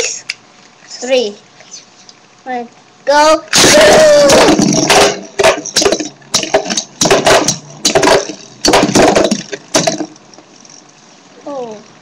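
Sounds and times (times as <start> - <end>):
spinning tops clashing: 3.5 - 10.9.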